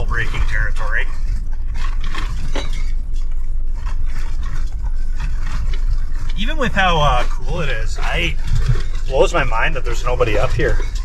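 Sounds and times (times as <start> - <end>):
engine and tyres rumbling: 0.0 - 11.0.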